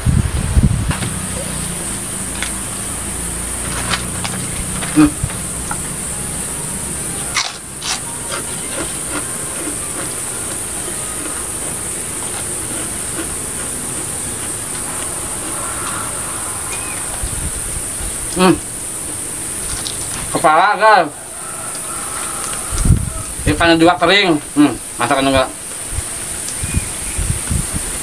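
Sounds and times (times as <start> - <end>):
insects droning: 0.0 - 28.0
man humming while eating: 4.8 - 5.4.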